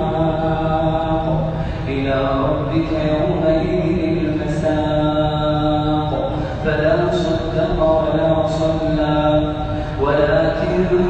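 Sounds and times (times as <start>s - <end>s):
man chanting melodically: 0.0s - 11.0s
breath: 1.5s - 1.9s, 6.3s - 6.6s, 9.6s - 10.0s.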